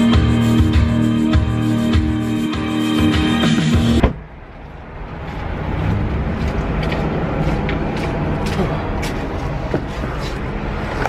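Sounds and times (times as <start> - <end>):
cars rumbling on road: 3.6 - 11.0.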